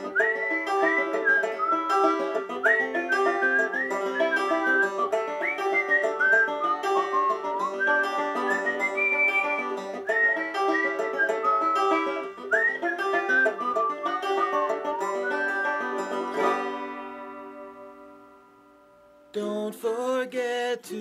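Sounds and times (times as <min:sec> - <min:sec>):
banjo picking chord rolls: 0:00.0 - 0:19.1
whistled melody: 0:00.0 - 0:19.2.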